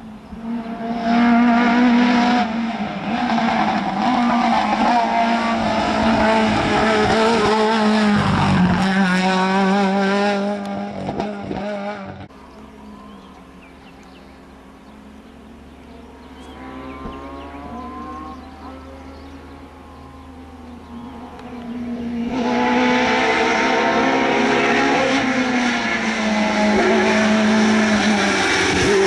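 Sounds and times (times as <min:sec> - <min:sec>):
rally car engine revving: 0:00.2 - 0:29.0.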